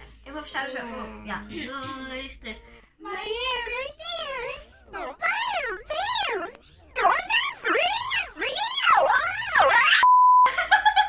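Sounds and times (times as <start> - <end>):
shrill sweeping wails: 5.0 - 10.0
censor beep: 10.0 - 10.5.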